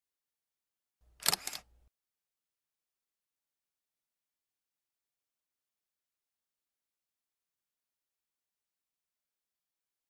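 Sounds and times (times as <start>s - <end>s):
camera shutter clicks: 1.2s - 1.7s.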